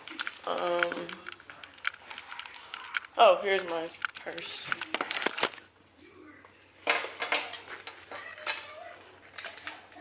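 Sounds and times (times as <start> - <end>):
objects clattering on stone countertop: 6.8 - 10.0.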